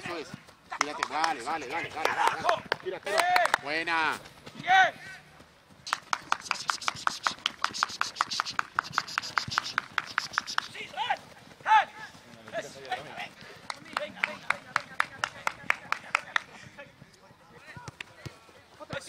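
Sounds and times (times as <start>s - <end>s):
fast light footstep taps: 5.7s - 19.0s.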